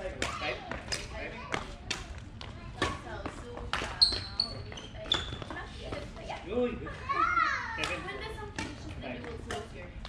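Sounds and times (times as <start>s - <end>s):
players' voices in echoing hall: 0.0s - 10.0s.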